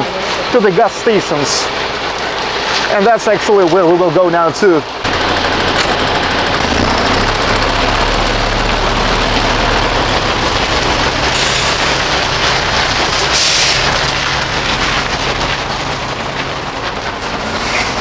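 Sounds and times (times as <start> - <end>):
diesel truck engine rattling: 0.0 - 18.0.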